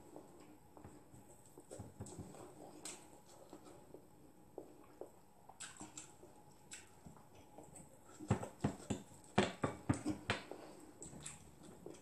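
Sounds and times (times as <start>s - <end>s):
person chewing with wet smacks: 0.0s - 12.0s.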